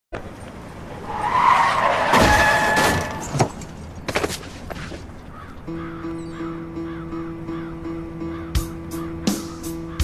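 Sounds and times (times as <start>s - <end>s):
noise with squealing tone: 1.0s - 3.4s.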